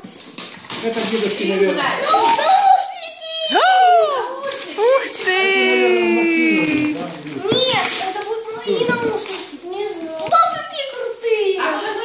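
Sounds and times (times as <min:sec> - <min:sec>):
children's wordless voices: 0:01.6 - 0:12.0.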